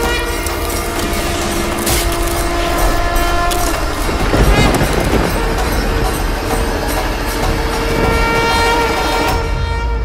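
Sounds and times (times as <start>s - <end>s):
dramatic orchestral score: 0.0s - 10.0s
horn-like drone: 0.0s - 10.0s
heavy low rumble: 1.0s - 8.4s.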